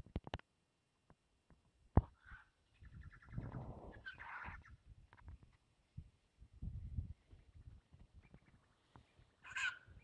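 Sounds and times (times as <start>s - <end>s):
faint bird calls: 2.0s - 4.8s, 7.2s - 10.0s
low rumbling noise: 3.0s - 4.9s.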